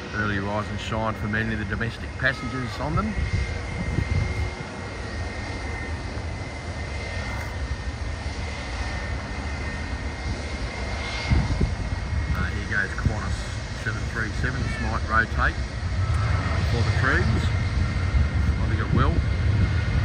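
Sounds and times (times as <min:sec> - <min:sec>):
jet engines rumbling and whining: 0:00.0 - 0:20.0.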